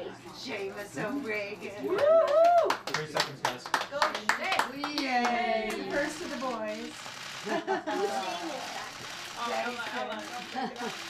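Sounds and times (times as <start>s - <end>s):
people clapping: 1.9s - 6.2s.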